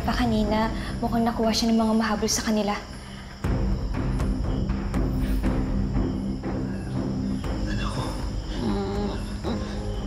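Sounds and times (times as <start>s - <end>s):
crickets chirring: 0.0s - 10.0s
low music drone: 3.0s - 10.0s.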